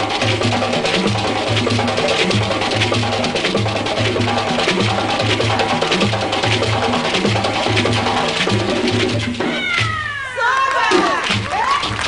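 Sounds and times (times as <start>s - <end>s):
hand drums playing: 0.0s - 12.0s
high voices crying out: 9.5s - 11.8s.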